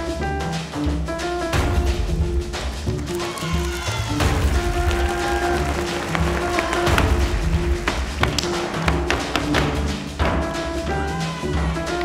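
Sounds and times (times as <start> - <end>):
boot taps on stage floor: 6.5 - 10.4.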